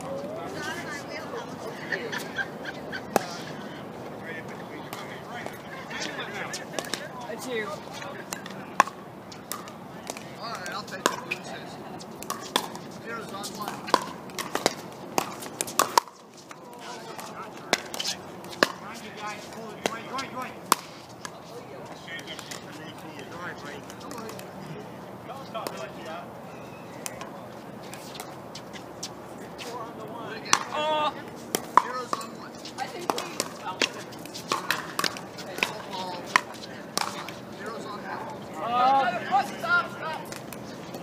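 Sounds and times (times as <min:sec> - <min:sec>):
paddles hitting plastic balls: 0:12.2 - 0:12.8, 0:13.6 - 0:18.8, 0:30.5 - 0:30.8, 0:31.5 - 0:37.4.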